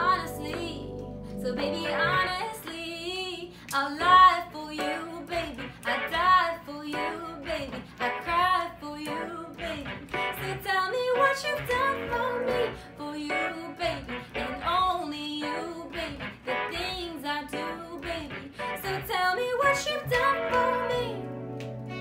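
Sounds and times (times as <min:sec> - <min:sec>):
keyboard accompaniment: 0:00.0 - 0:05.2, 0:20.0 - 0:22.0
woman singing: 0:00.0 - 0:21.3.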